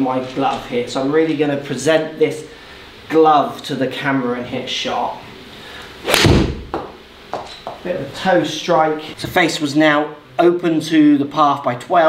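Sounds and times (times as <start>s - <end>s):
golf club striking ball: 6.0s - 7.0s.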